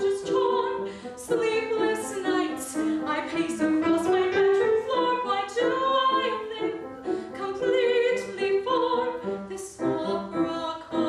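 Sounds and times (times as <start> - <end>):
woman singing operatically: 0.0 - 11.0.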